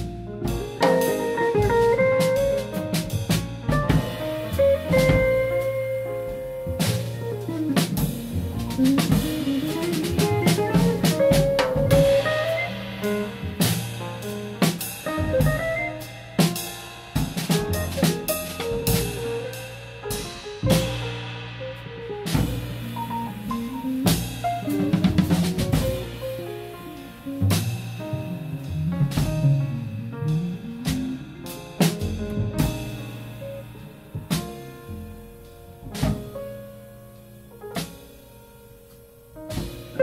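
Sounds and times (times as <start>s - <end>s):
drum kit strikes: 0.0s - 40.0s
jazz band playing: 0.0s - 40.0s.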